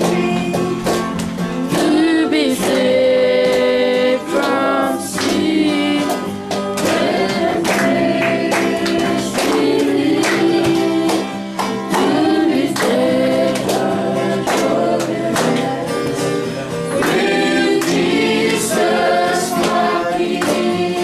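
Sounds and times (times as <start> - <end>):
group singing gospel song: 0.0 - 21.0
instrumental backing with beat: 0.0 - 21.0.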